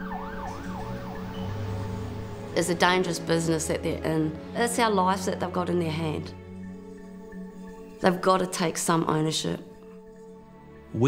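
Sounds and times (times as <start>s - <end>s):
emergency vehicle siren: 0.0s - 3.8s.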